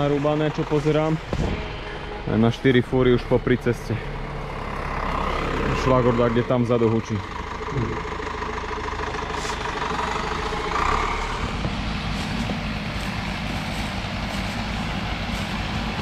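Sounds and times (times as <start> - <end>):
distant tractor engine running: 0.0 - 16.0.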